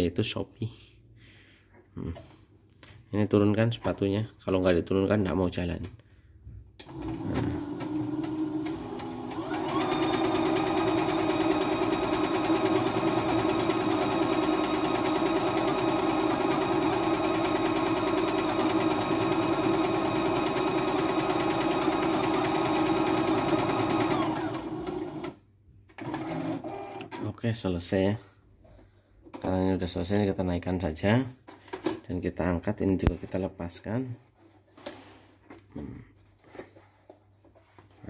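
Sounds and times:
sewing machine stitching: 0:06.8 - 0:25.4, 0:26.0 - 0:27.1.

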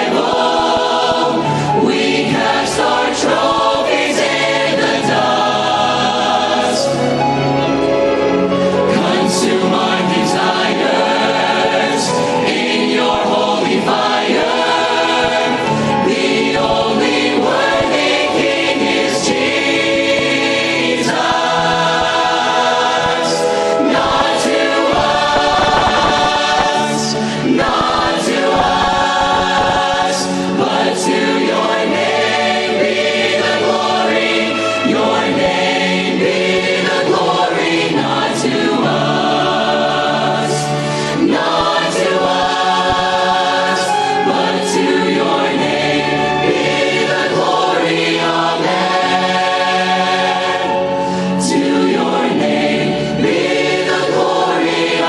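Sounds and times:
choir singing worship song: 0:00.0 - 0:55.0
percussion hits: 0:21.1 - 0:30.8.

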